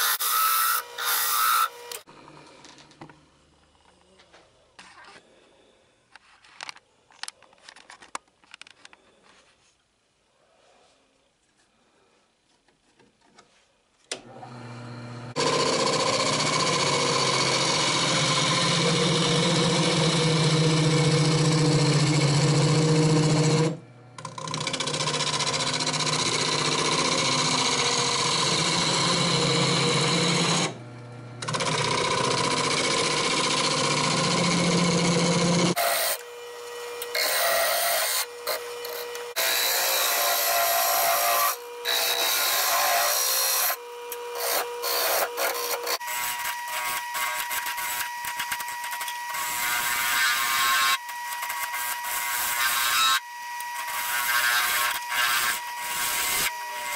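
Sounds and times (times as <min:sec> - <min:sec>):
wood lathe cutting noise: 0:14.2 - 0:56.9
lathe motor hum: 0:14.3 - 0:46.0.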